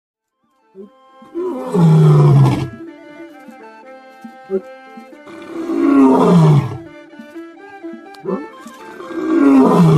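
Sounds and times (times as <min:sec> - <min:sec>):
held instrumental notes: 0:00.3 - 0:09.9
lion roaring: 0:01.3 - 0:02.8, 0:05.3 - 0:06.9, 0:09.1 - 0:09.9
lion grunt: 0:09.1 - 0:09.9.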